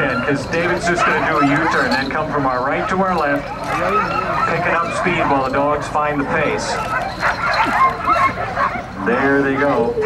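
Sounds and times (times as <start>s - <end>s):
dogs barking and yipping: 0.0s - 10.0s.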